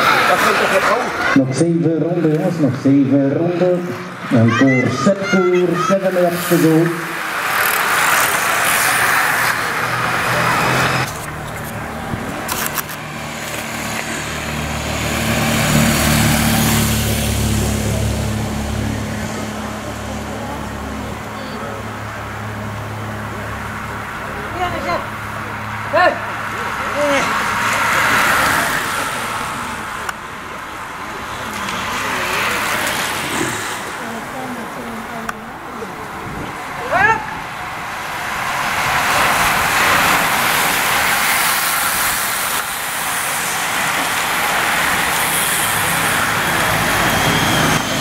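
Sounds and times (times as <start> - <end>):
racing bicycles passing: 0.0 - 48.0.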